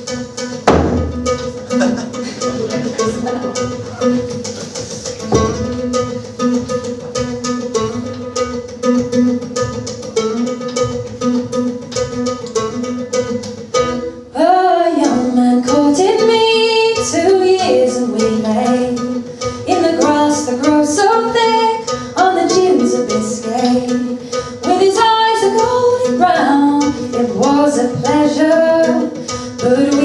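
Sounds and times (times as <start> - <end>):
plucked acoustic guitar: 0.0 - 30.0
woman singing: 14.3 - 30.0.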